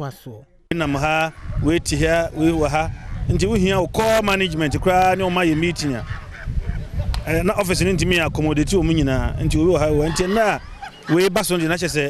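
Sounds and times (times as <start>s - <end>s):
man speaking: 0.0s - 6.1s.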